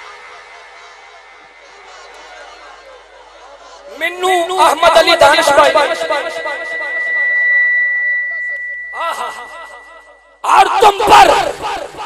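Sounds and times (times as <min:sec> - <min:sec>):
high-pitched pa whine: 0:04.6 - 0:11.4.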